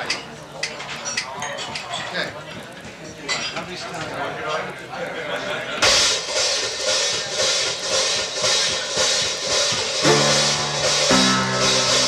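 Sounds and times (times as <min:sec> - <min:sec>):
jazz drum kit beat: 0:05.8 - 0:12.0
long held notes: 0:10.0 - 0:12.0.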